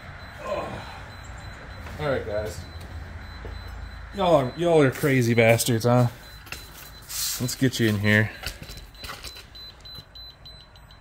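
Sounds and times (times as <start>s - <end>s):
rapid high-pitched alarm beeps: 0.0s - 11.0s.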